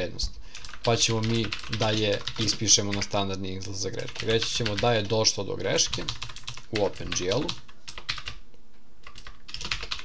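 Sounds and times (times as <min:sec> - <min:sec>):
computer keyboard typing: 0:00.5 - 0:08.4, 0:09.0 - 0:10.0.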